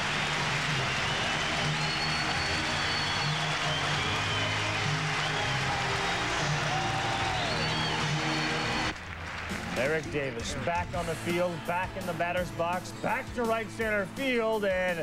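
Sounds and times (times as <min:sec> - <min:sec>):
crowd applauding and cheering: 0:00.0 - 0:13.2
music playing: 0:00.0 - 0:15.0.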